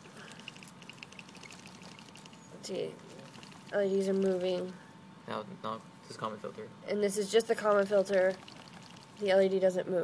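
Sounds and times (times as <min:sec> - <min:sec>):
circuit board rattling: 0:00.3 - 0:02.5.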